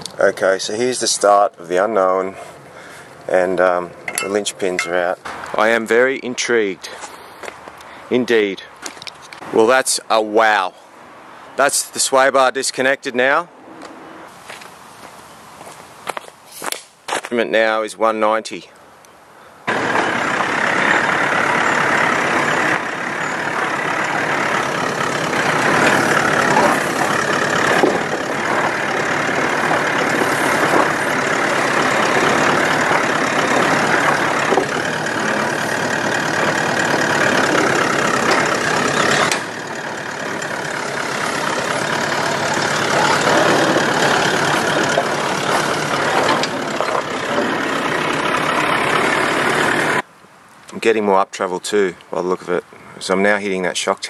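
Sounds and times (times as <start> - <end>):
diesel engine running at low revs: 19.7 - 50.0.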